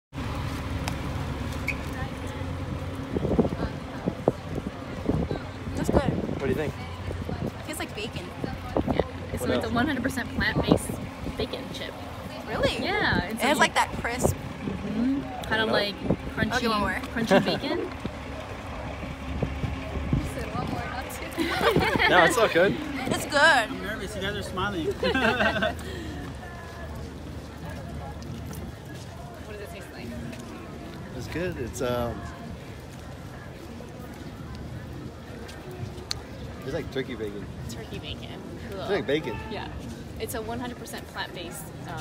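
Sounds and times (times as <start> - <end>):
faint outdoor background noise: 0.1 - 42.0
wind buffeting microphone: 2.2 - 18.2, 18.8 - 23.6
fire engine idling: 13.4 - 23.2.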